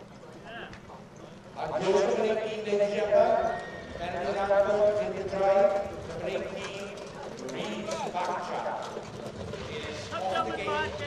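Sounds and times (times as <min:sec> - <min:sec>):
horse hoofbeats trotting on dirt: 0:00.0 - 0:11.0.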